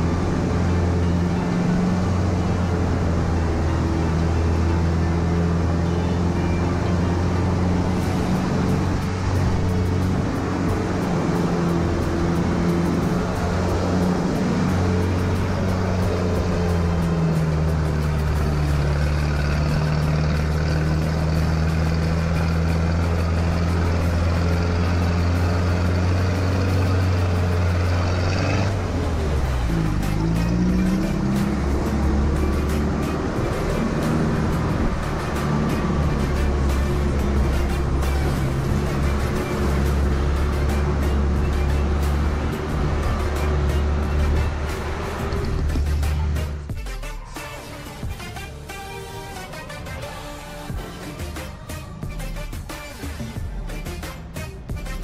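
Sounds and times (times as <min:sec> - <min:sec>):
jeep engine running: 0:00.0 - 0:55.0.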